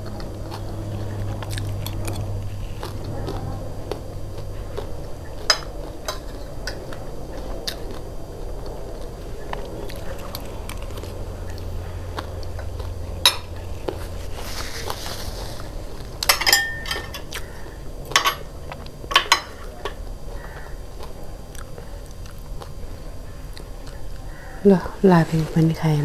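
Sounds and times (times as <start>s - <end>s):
chewing crunchy food: 0.0s - 16.4s, 17.0s - 24.6s
cutlery clinking on ceramic plates: 16.2s - 17.3s, 18.1s - 18.5s, 19.1s - 20.0s.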